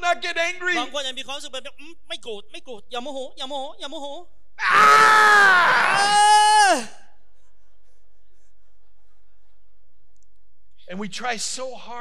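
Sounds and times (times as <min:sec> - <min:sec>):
man groaning yell: 0:04.6 - 0:07.0.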